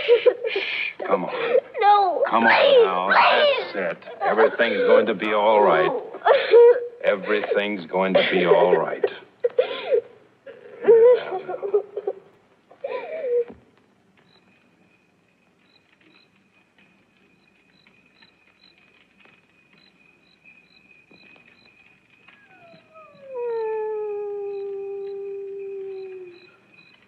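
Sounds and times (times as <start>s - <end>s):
dog howling: 22.3s - 26.6s.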